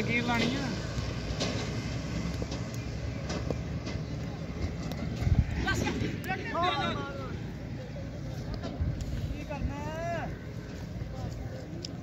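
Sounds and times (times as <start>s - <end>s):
wind rumbling on microphone: 0.7s - 6.8s, 8.2s - 12.0s.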